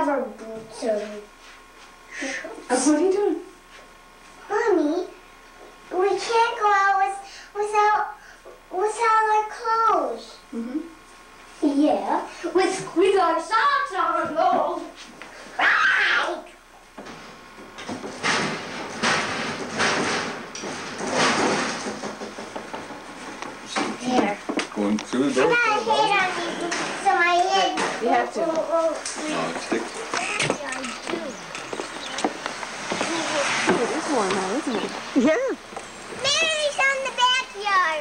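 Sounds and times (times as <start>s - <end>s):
rustling and handling noise: 16.9s - 37.5s
children chattering and calling out: 25.3s - 38.0s.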